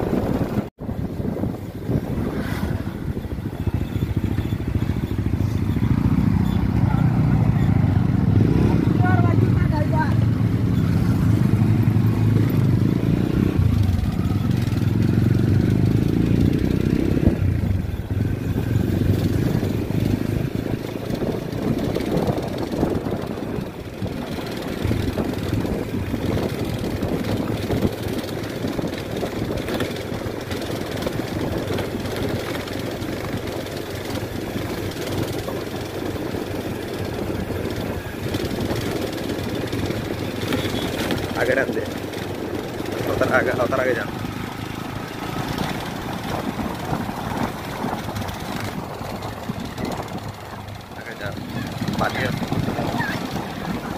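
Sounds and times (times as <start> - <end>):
motorcycle engine running: 0.0 - 53.9
road noise: 0.0 - 53.9
wind rushing over microphone: 0.0 - 53.9.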